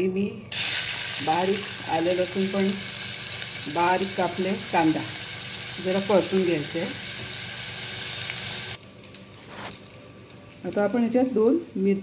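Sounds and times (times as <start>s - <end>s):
food sizzling in hot oil: 0.5s - 12.0s.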